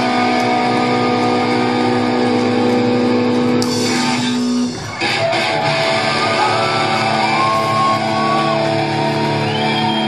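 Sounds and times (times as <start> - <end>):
electric guitars sliding notes: 0.0 - 10.0
rock band playing: 0.0 - 10.0.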